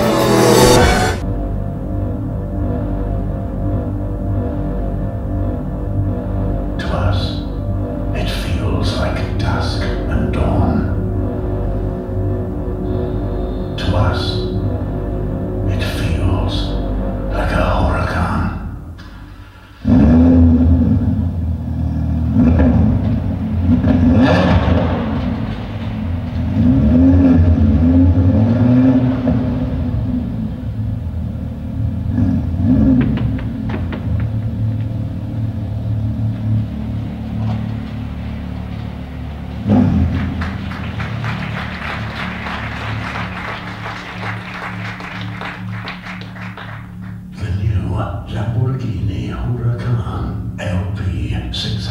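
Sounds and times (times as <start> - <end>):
car engine revving: 0.0 - 50.6.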